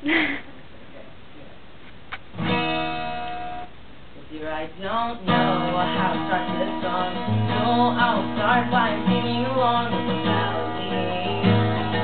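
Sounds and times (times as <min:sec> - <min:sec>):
room hiss: 0:00.0 - 0:12.0
guitar chord ringing: 0:02.4 - 0:03.7.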